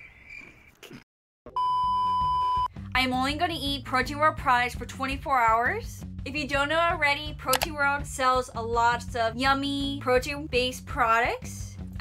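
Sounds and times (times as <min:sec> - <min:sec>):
censor beep: 0:01.5 - 0:02.7.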